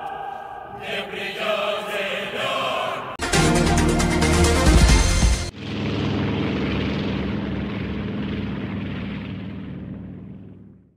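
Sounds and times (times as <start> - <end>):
propeller airplane engine: 3.9 - 10.9.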